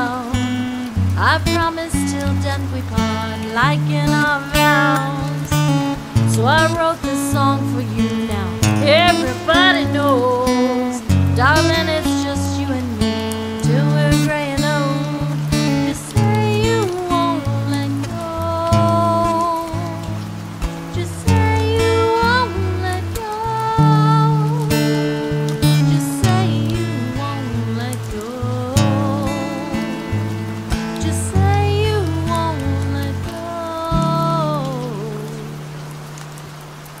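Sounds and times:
acoustic guitar playing: 0:00.0 - 0:37.0.

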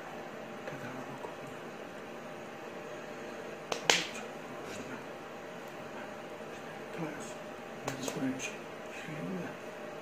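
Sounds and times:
low room hiss: 0:00.0 - 0:10.0
hands slapping together: 0:03.7 - 0:04.2, 0:07.8 - 0:08.2.

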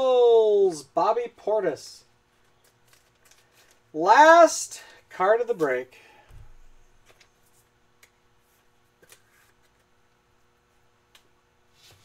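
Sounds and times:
faint steady hum: 0:00.0 - 0:12.0
trading cards being handled: 0:02.3 - 0:03.9, 0:06.5 - 0:10.1.

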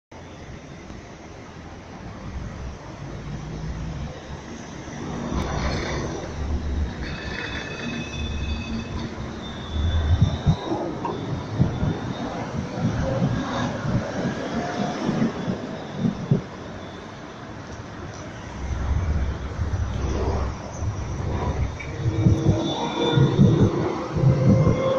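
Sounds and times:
tram rumble: 0:00.1 - 0:24.9
tram wheels squealing: 0:03.0 - 0:24.9.

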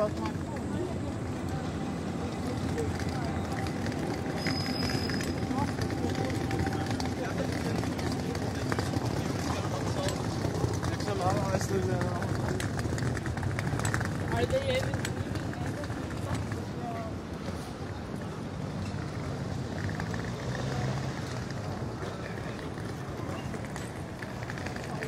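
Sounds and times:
passers-by talking: 0:00.0 - 0:25.0
traffic hum: 0:00.0 - 0:25.0.

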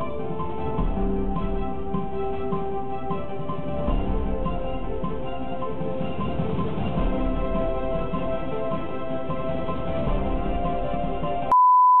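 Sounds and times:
tv bumper music: 0:00.0 - 0:11.5.

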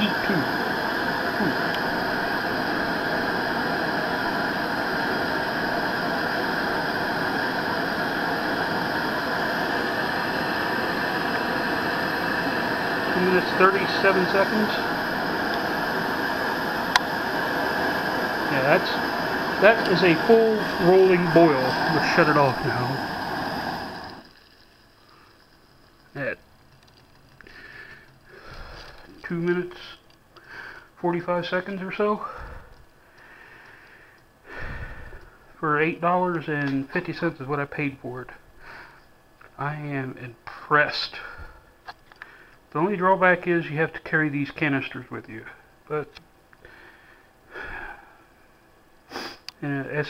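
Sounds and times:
water nearly boiling in pot: 0:00.0 - 0:35.2
propane stove burner hissing: 0:00.0 - 0:50.0.

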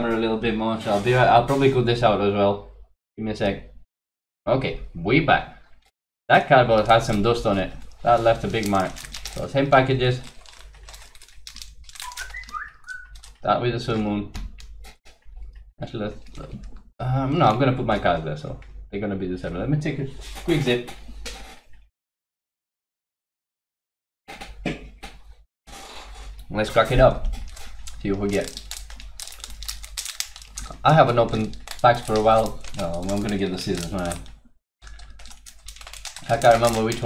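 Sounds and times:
foil packs crinkling: 0:06.6 - 0:13.4, 0:26.8 - 0:37.0.

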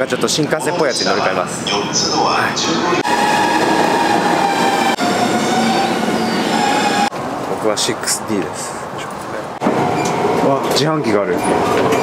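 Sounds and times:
train rumbling: 0:00.8 - 0:12.0.

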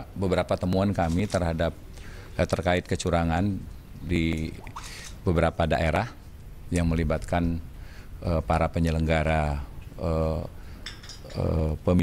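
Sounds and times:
man speaking: 0:02.4 - 0:10.5.

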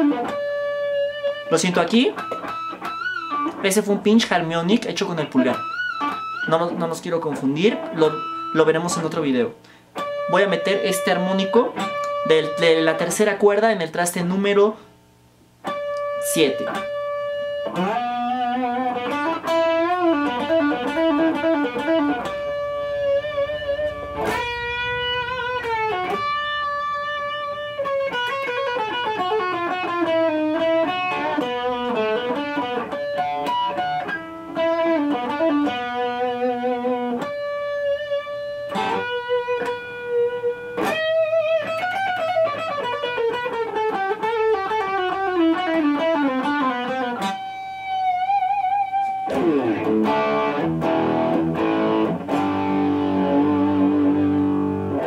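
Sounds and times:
electric guitar melody with vibrato: 0:00.0 - 0:13.2, 0:15.6 - 0:55.0.

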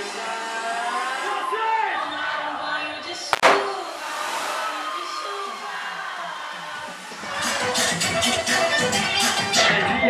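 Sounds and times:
dance music over sound system: 0:03.2 - 0:10.0
falling tones: 0:03.4 - 0:07.2
hissing sweep: 0:03.4 - 0:07.3.

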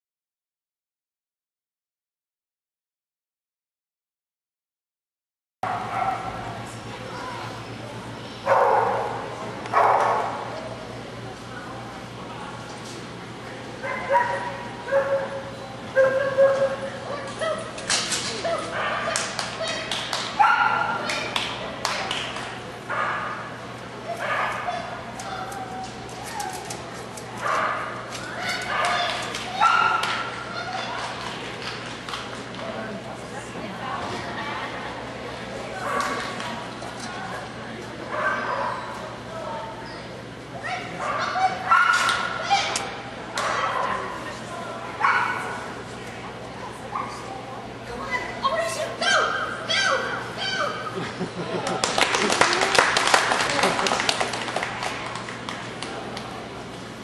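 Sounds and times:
dog barking: 0:05.7 - 0:06.3, 0:08.5 - 0:10.4, 0:13.9 - 0:15.4, 0:20.4 - 0:21.0, 0:28.7 - 0:30.1, 0:38.2 - 0:38.8, 0:41.0 - 0:42.3, 0:45.0 - 0:45.6.

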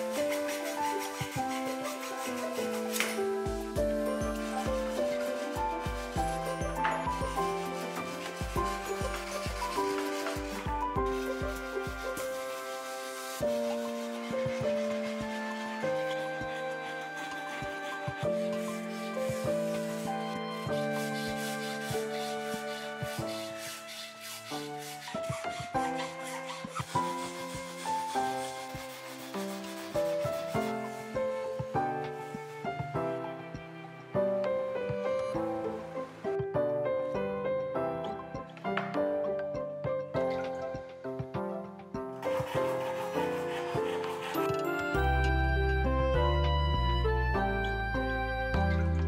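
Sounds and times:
file rubbing on wood: 0:00.0 - 0:32.4, 0:42.2 - 0:45.1
background music: 0:00.0 - 0:49.0.

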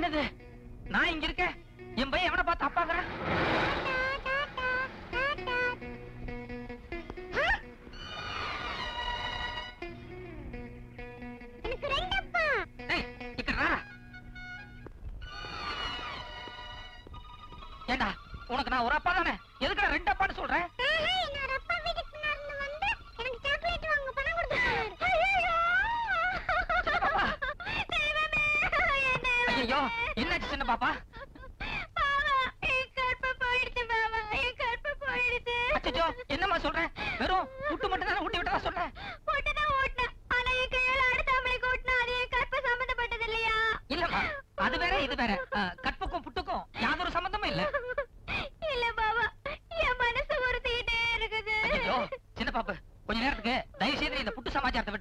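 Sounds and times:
high-pitched human wail: 0:24.5 - 0:26.7.

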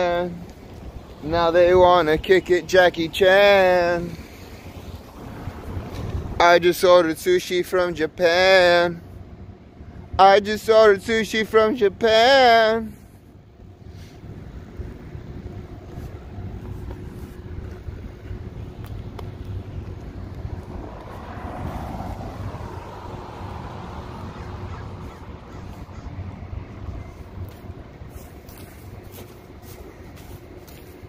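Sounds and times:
wind rumble on microphone: 0:00.0 - 0:06.7, 0:13.3 - 0:29.1
vehicle passing: 0:00.0 - 0:10.1, 0:13.8 - 0:31.0
traffic noise: 0:00.0 - 0:31.0.

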